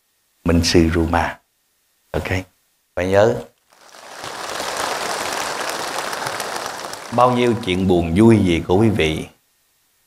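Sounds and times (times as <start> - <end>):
large crowd applauding: 3.7 - 8.2.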